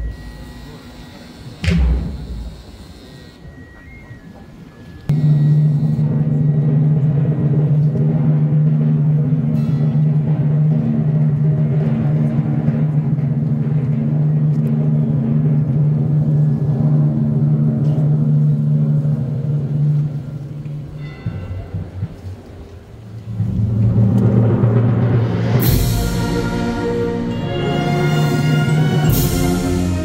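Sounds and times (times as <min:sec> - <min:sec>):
brass band holding a chord: 0:23.3 - 0:30.0.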